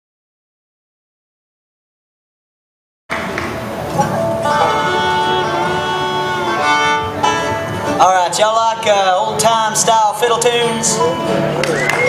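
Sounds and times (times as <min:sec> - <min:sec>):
string instruments holding notes: 0:03.1 - 0:12.0.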